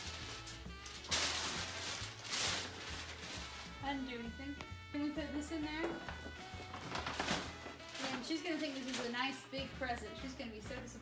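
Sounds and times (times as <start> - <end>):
tissue paper rustling: 0.0 - 4.2, 6.0 - 10.4.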